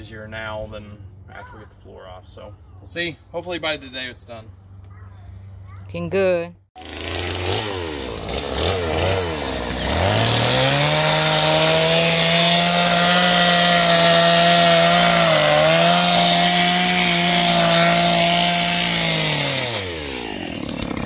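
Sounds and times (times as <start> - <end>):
chainsaw cutting wood: 6.8 - 21.0.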